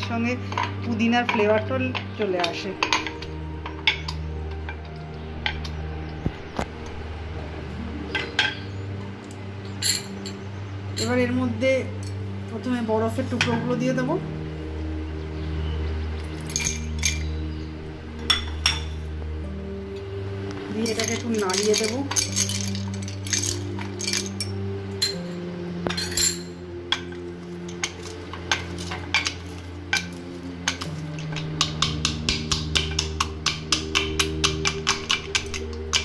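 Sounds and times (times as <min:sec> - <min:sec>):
background music: 0:00.0 - 0:36.0
ice cubes clinking into glass mug: 0:21.0 - 0:24.5.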